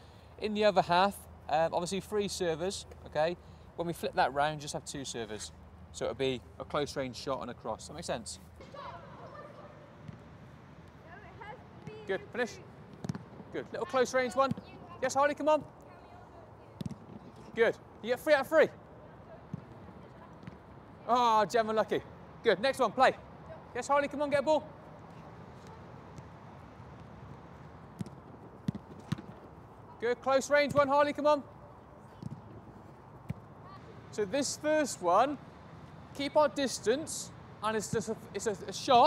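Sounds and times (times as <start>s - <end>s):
football thuds on turf: 12.9s - 13.3s, 16.8s - 17.2s, 28.0s - 29.5s.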